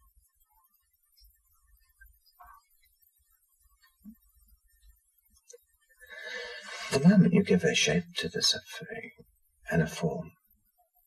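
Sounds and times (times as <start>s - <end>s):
man breathing in: 6.0s - 6.9s.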